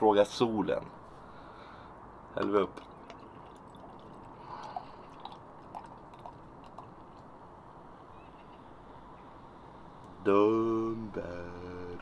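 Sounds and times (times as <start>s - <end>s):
gurgles and drips: 2.6s - 7.5s
beer pouring into glass: 2.9s - 6.9s.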